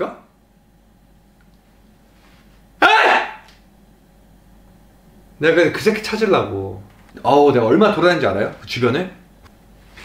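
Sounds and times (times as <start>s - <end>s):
man's loud wordless burst: 2.8s - 3.5s.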